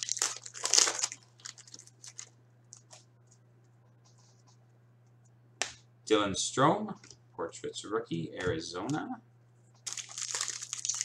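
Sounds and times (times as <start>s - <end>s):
steady low hum: 0.2s - 11.0s.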